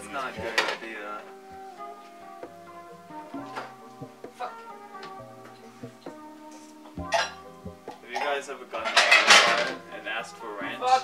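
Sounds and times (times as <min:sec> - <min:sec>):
guitar music: 0:00.0 - 0:11.0
dishes and cutlery clattering: 0:00.3 - 0:00.9, 0:07.0 - 0:07.4, 0:08.1 - 0:09.8.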